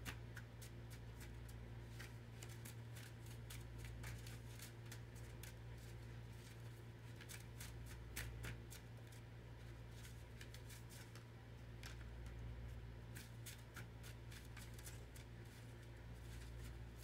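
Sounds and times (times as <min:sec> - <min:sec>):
cards being shuffled: 0:00.0 - 0:12.4, 0:13.1 - 0:17.0
steady low hum: 0:00.0 - 0:17.0.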